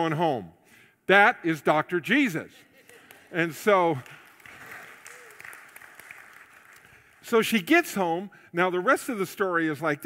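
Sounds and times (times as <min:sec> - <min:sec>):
faint applause: 0:03.9 - 0:07.2.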